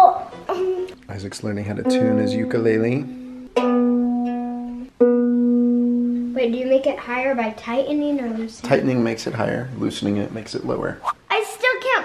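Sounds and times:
ukulele string plucked ringing: 1.8s - 6.3s.

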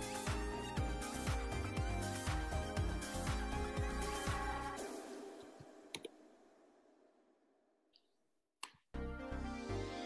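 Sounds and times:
background music: 0.0s - 6.5s, 9.0s - 10.0s
computer mouse clicks: 5.9s - 6.1s.

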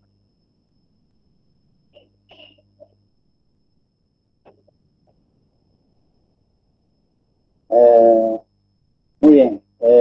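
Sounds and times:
man holding drawn-out vowel: 7.7s - 8.5s, 9.2s - 10.0s.

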